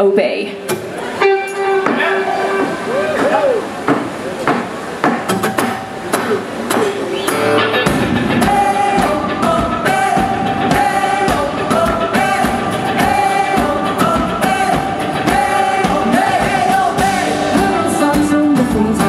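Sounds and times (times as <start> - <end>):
live band playing: 0.0 - 19.0
drums: 0.7 - 19.0
electric guitar playing: 0.8 - 3.9, 5.3 - 19.0
bass guitar: 7.3 - 19.0.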